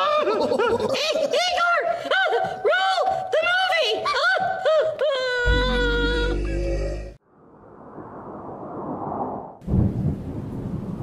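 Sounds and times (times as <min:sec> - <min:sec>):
thunderclap: 0:07.7 - 0:11.0
rolling thunder rumble: 0:07.8 - 0:11.0.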